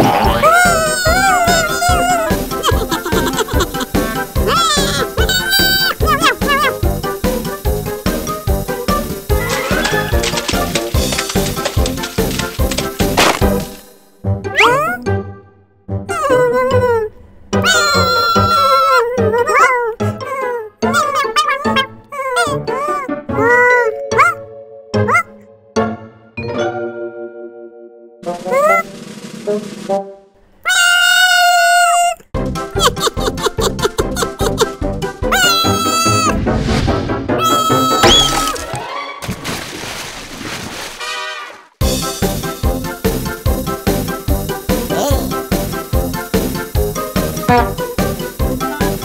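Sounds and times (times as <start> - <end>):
cartoon puppy whining: 0.0 - 6.8, 14.5 - 15.1, 16.0 - 25.4, 28.4 - 28.9, 30.6 - 34.7, 35.3 - 36.4, 37.4 - 38.6, 44.9 - 45.4, 47.4 - 47.8
children's background music: 0.0 - 16.8, 17.6 - 30.3, 32.4 - 39.2, 41.2 - 49.0.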